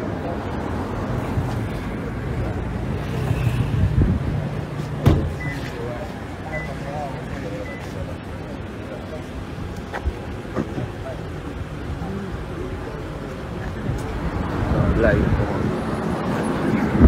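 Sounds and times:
car door shutting: 5.0 - 5.8.

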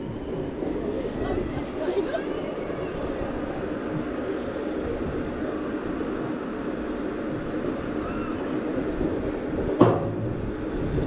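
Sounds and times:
ride machinery rumbling: 0.0 - 11.0
sharp clunk: 9.8 - 10.4.

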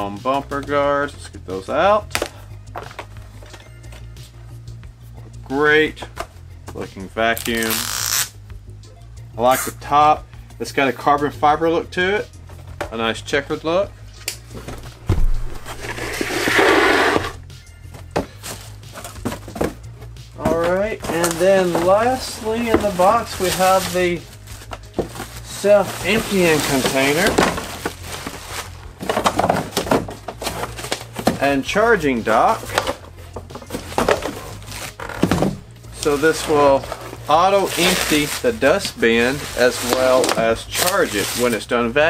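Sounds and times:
soft background music: 0.0 - 42.0
rustling handling noise: 14.2 - 41.7
cardboard scraping and knocking: 14.6 - 17.4, 18.0 - 31.6, 32.5 - 35.7.

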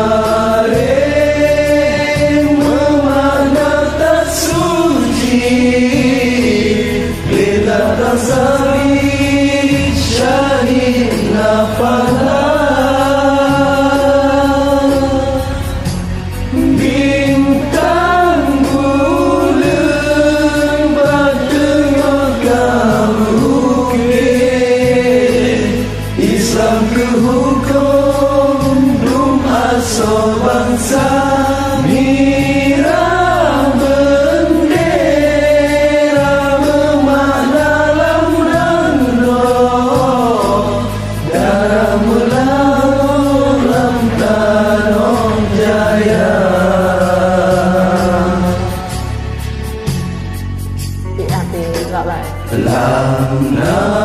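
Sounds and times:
chant-like singing: 0.0 - 50.1, 52.4 - 54.0
low instrumental backing: 0.0 - 54.0.

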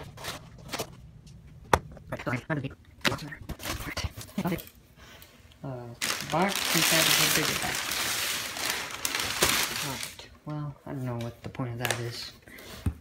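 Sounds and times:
paper packing rustling: 0.0 - 0.9, 6.0 - 10.2.

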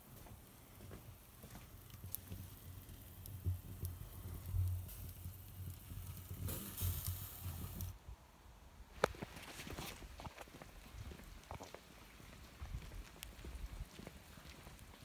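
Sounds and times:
charcoal grill hiss and crackle: 0.0 - 8.0, 8.9 - 15.0.

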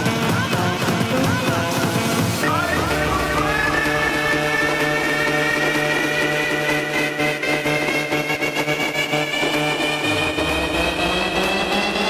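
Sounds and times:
steady bass: 0.0 - 12.0
sustained synth notes: 2.6 - 12.0.

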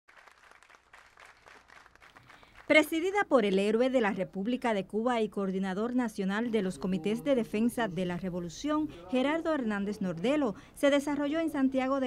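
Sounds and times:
faint audience applause: 0.1 - 2.8.

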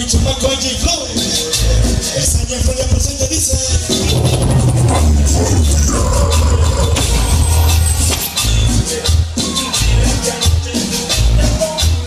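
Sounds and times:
latin dance music over loudspeakers: 0.0 - 12.0.

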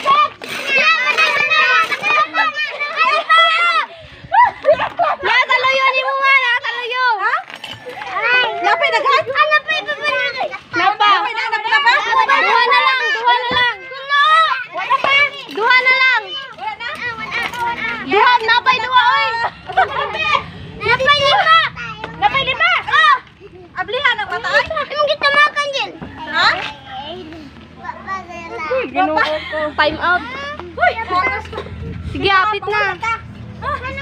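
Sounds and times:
children talking and calling out: 0.0 - 34.0.

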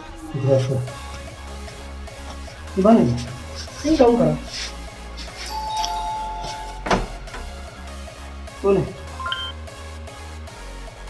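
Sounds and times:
electronic doorbell two-tone chime: 5.5 - 7.0, 9.2 - 9.6.

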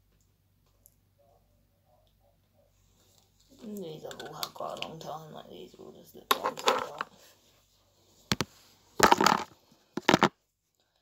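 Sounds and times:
plastic pots clattering: 8.3 - 10.3
plastic tubes clicking: 8.3 - 10.3.

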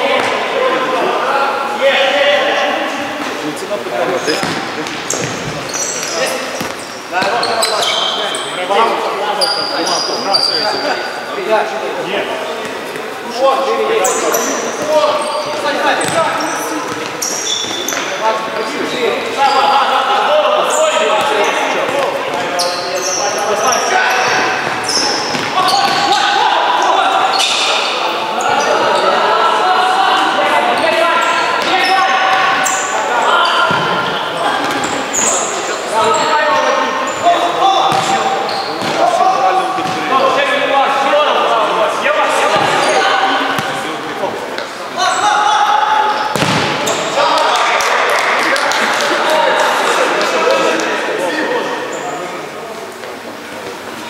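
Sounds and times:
players shouting: 13.2 - 43.8, 44.9 - 51.8
ball kicks and bounces: 37.9 - 38.1, 46.3 - 46.8.

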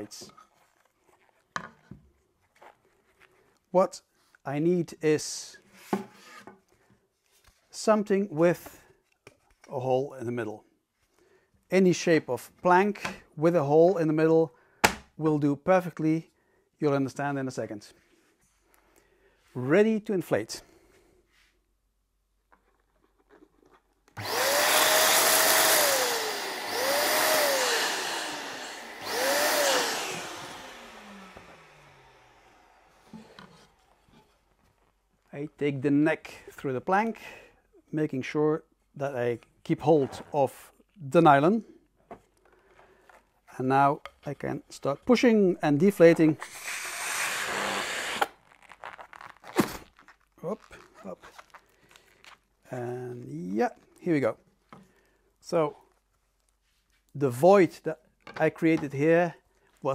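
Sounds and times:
electric balloon inflator motor: 24.2 - 33.4, 46.4 - 48.4
air hissing out of balloon: 46.4 - 48.3
rubbing of squashed latex: 46.5 - 52.7.

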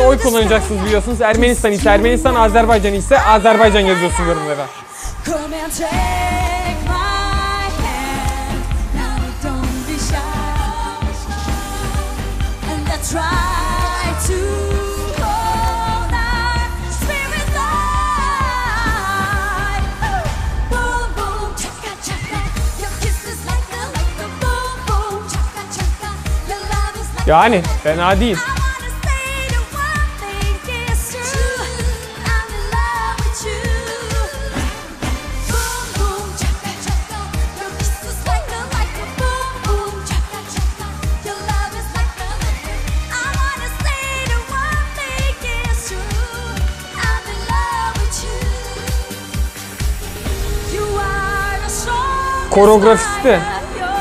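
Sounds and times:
dance beat: 0.0 - 4.4
pop beat and bass line: 0.0 - 4.5, 5.6 - 54.0.

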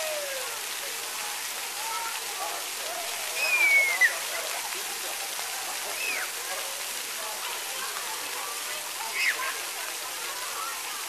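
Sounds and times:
children's voices: 0.0 - 11.0
water spraying hiss: 0.0 - 11.0
child squealing: 3.4 - 4.1.

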